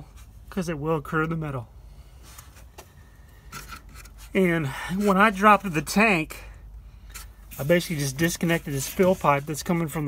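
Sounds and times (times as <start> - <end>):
phone handling rubbing and scraping: 2.2 - 5.4, 7.0 - 10.0.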